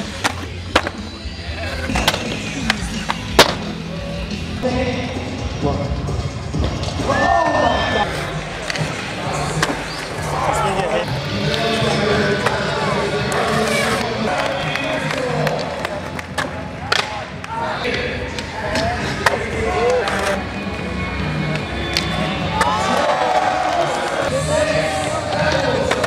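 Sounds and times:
skateboard impacts: 0:00.0 - 0:03.7, 0:25.3 - 0:26.0
skateboards rolling on concrete: 0:00.0 - 0:03.9, 0:06.6 - 0:26.0
background music: 0:00.0 - 0:26.0
crowd voices: 0:00.0 - 0:26.0.

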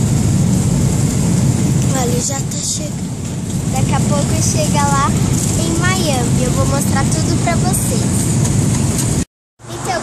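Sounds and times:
airliner engines rumbling: 0:00.0 - 0:10.0
rushing air: 0:00.0 - 0:10.0.

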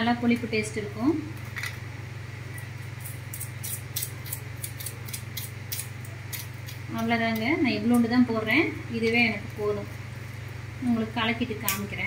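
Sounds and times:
steady low hum: 0:00.0 - 0:12.0.

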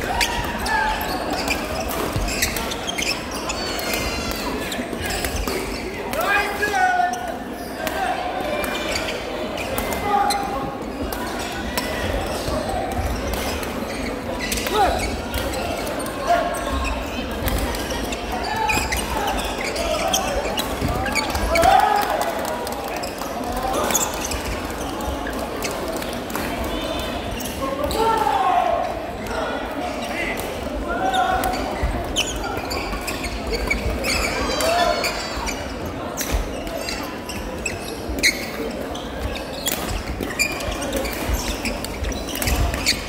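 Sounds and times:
shoe squeaks: 0:00.0 - 0:06.0, 0:08.6 - 0:11.6, 0:12.2 - 0:21.7, 0:22.9 - 0:26.1, 0:31.0 - 0:43.0.

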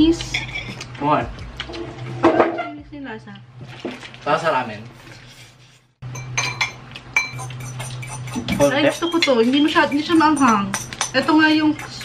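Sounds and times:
cutlery clinking on a plate: 0:06.1 - 0:12.0.

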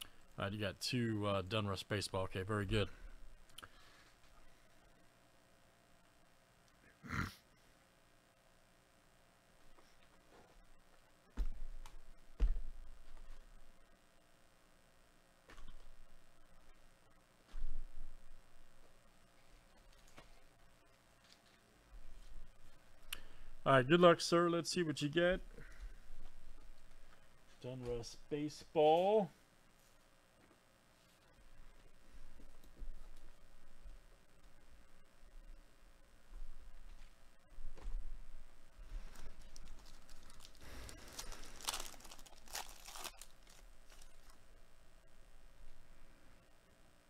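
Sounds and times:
foil wrapper crinkling: 0:38.9 - 0:44.4
card packs being handled: 0:39.0 - 0:44.4.

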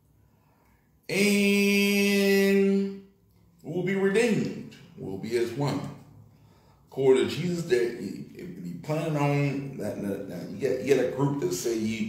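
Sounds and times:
man singing a held note: 0:01.1 - 0:03.0.

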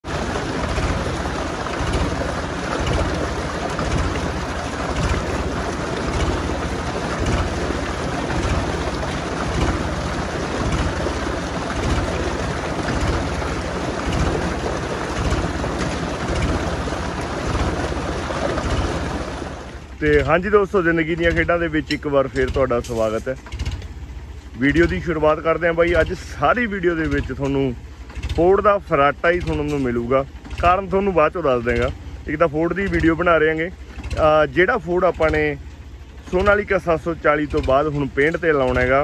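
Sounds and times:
tractor diesel engine running: 0:00.0 - 0:39.0
water pouring into a tank: 0:00.0 - 0:39.0.

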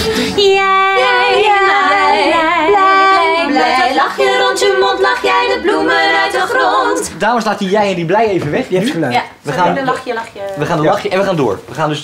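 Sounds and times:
women singing in harmony: 0:00.0 - 0:07.2.

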